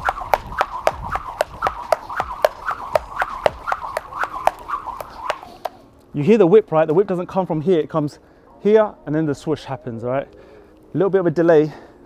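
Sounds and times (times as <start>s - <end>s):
jump rope swooshing through air: 0.0s - 5.8s
rope whipping on mat: 0.0s - 5.8s.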